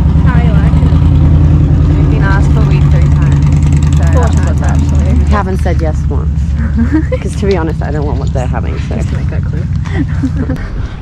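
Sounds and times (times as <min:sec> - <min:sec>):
engine idling: 0:00.0 - 0:11.0.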